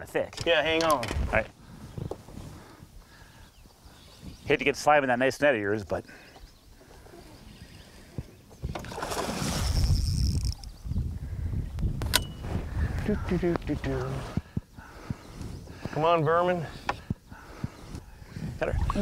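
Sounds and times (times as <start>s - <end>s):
sharp click: 12.0s - 12.4s.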